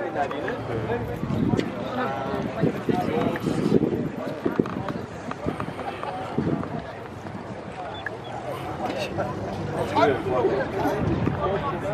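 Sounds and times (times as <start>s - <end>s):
background chatter: 0.0s - 11.9s.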